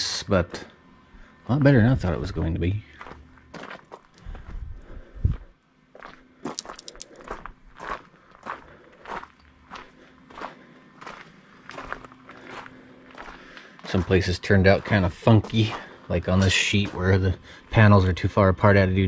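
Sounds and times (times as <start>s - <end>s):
footsteps on gravel: 2.0s - 17.4s.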